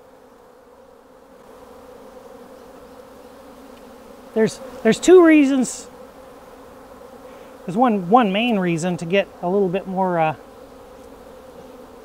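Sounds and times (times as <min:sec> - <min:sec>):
honey bees buzzing: 0:00.0 - 0:12.0.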